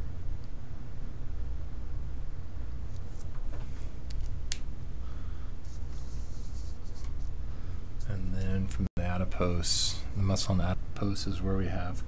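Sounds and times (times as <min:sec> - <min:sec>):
steady low hum: 0:00.0 - 0:12.0
marker scratching on paper: 0:05.6 - 0:07.3.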